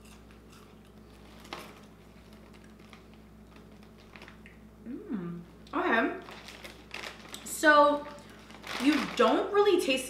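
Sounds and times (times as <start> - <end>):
popcorn being chewed: 0.0 - 4.7, 5.6 - 9.7.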